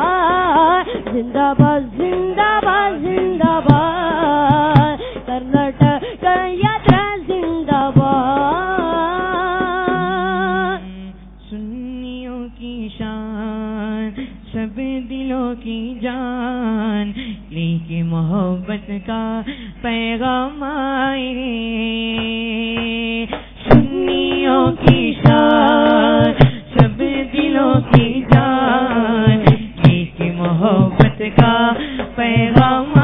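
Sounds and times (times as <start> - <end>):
sharp loud beats: 0.0 - 10.2, 22.8 - 33.0
voices singing: 0.0 - 11.0, 17.6 - 33.0.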